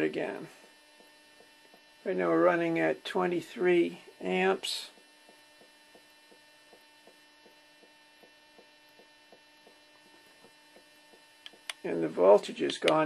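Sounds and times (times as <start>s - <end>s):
faint electrical hum: 0.0s - 13.0s
soft evenly spaced ticks: 0.4s - 11.9s.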